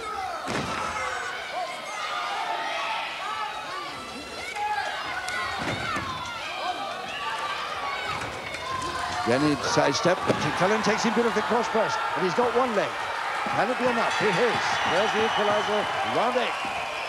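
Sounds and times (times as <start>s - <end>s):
crowd shouting and yelling: 0.0s - 17.0s.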